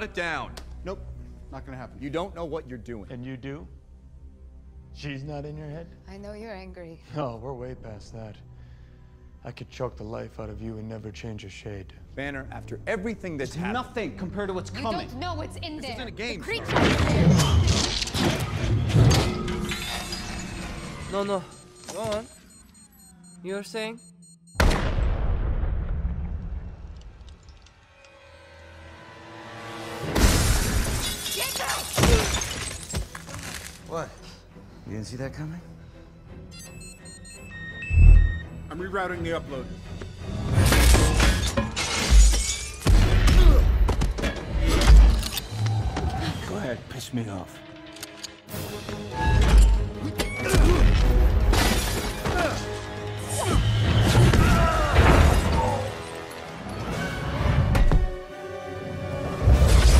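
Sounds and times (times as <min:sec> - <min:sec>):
sustained music score: 0:00.0 - 0:31.0, 0:33.4 - 0:41.9, 0:44.4 - 0:59.9
glass shattering: 0:30.2 - 0:33.8, 0:40.6 - 0:43.4
fight scene music: 0:47.7 - 0:59.9.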